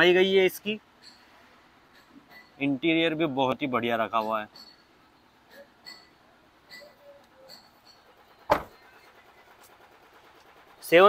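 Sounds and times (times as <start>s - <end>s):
van door slamming: 8.5s - 8.8s.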